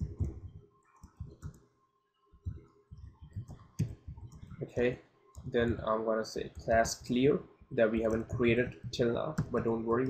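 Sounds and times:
keyboard typing: 0.0 - 1.6, 2.4 - 4.7, 5.4 - 5.9, 7.8 - 10.0.

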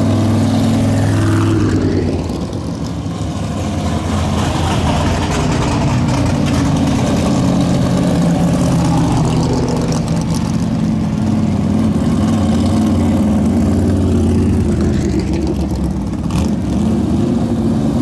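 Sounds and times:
race car engines rolling past: 0.0 - 18.0.

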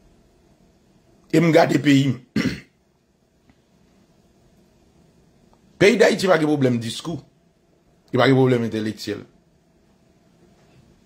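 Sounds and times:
man speaking: 1.3 - 2.5, 5.8 - 7.3, 8.1 - 9.3
man clearing throat: 2.3 - 2.8.

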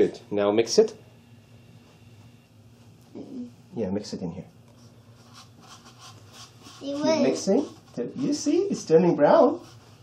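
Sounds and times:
low steady hum: 0.0 - 10.0
person speaking: 6.7 - 9.8.

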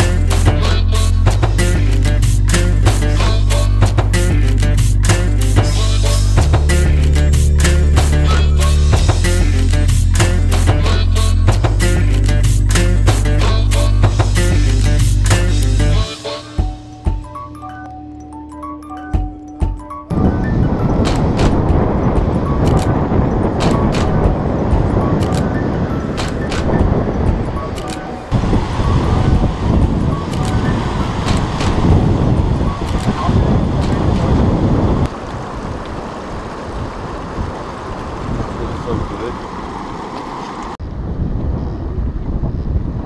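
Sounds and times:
guitar music: 0.0 - 32.9
wind buffeting microphone: 20.1 - 43.0.

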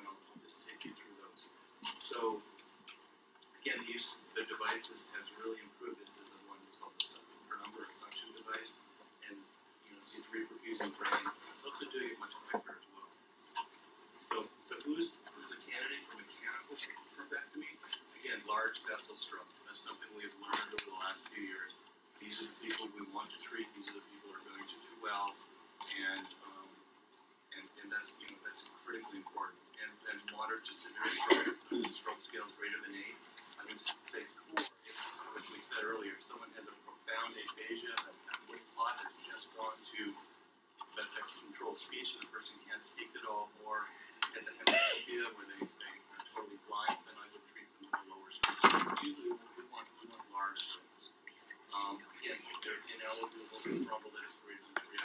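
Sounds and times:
faint indistinct talking: 0.0 - 26.8, 27.5 - 55.0.

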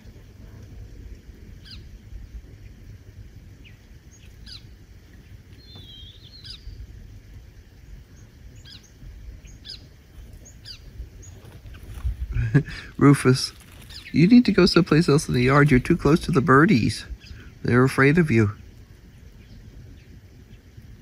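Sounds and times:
songbirds chirping: 0.0 - 21.0
steady low rumble: 0.0 - 21.0.

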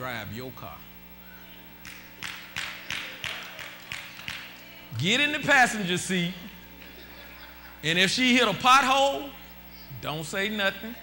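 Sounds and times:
low electrical hum: 0.0 - 11.0
hand claps: 1.8 - 5.0.

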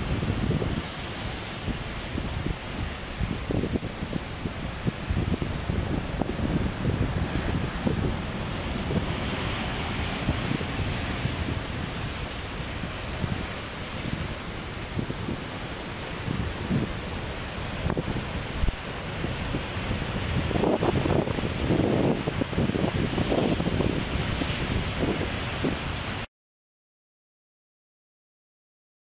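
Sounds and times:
sea waves breaking on boulders: 0.0 - 26.3
wind buffeting microphone: 0.0 - 26.3.

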